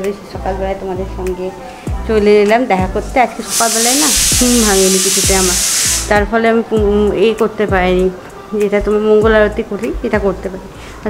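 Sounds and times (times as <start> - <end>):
loud steady hiss: 3.3 - 6.3
person speaking: 3.4 - 6.3.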